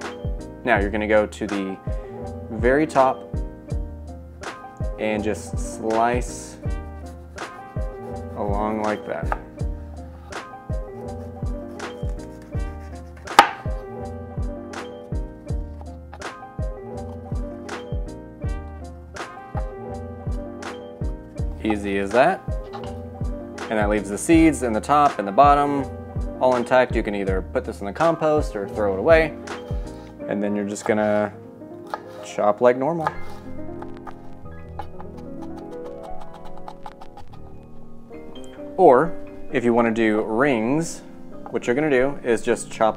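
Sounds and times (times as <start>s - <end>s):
background music with beat: 0.0s - 32.1s
knife chopping on plastic board: 9.3s - 9.5s, 13.1s - 13.8s, 31.9s - 32.2s, 34.8s - 37.4s
knife striking cutting board: 13.1s - 13.8s.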